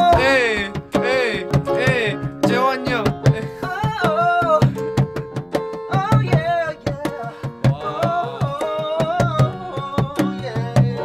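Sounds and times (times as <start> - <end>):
man singing: 0.0 - 5.0, 5.9 - 11.0
quick steady drum beat: 0.0 - 11.0.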